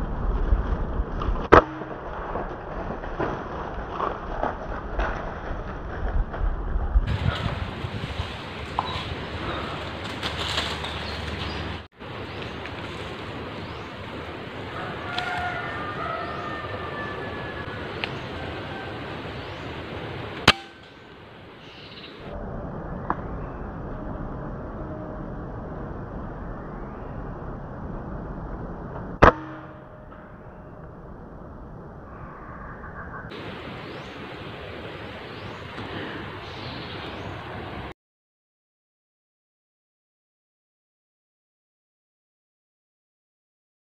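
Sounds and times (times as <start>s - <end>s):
outdoor background hiss: 7.6s - 23.9s, 33.3s - 37.9s
air rifle shots: 20.5s - 20.9s.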